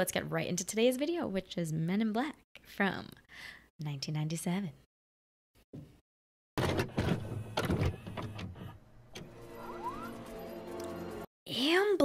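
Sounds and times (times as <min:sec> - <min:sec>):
mechanical clunks and clicks: 0:06.6 - 0:09.4
short rising chirp: 0:09.3 - 0:10.6.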